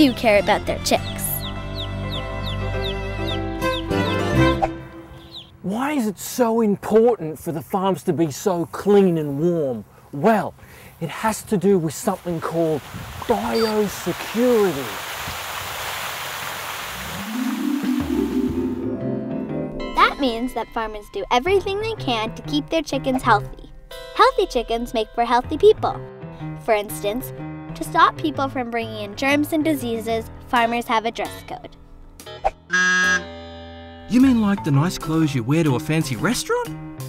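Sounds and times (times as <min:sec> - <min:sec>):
water mist spraying: 0:12.1 - 0:18.8
guitar chord ringing: 0:17.4 - 0:21.5.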